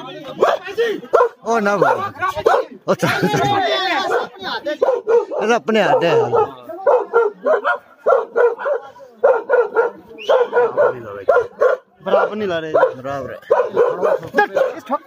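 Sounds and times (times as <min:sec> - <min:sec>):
dog barking: 0:00.4 - 0:02.7, 0:04.0 - 0:14.9.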